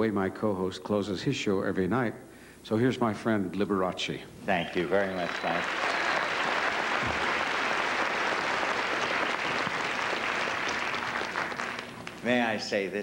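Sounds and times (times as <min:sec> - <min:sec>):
audience applauding: 0:04.8 - 0:12.2.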